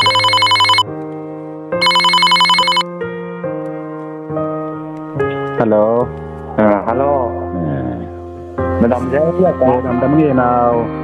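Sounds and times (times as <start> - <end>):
phone ringing trill: 0.0 - 0.8, 1.8 - 2.8
keyboard music: 0.0 - 0.9, 1.8 - 2.9.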